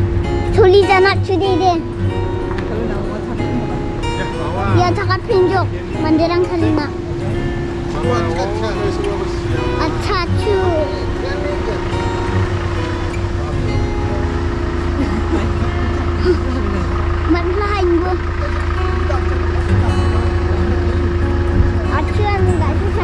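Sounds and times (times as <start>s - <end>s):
steady low hum: 0.0s - 23.0s
people talking: 0.5s - 1.9s, 2.6s - 23.0s.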